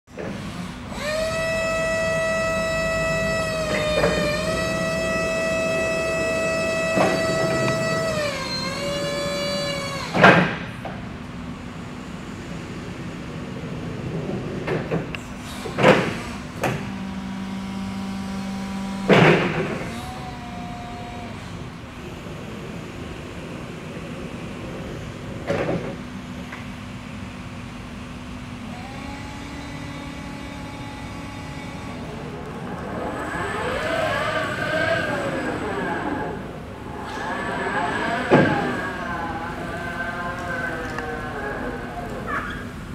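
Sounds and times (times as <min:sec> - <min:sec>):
forklift motor hum: 0:00.1 - 0:42.9
traction motor whining: 0:00.1 - 0:42.9.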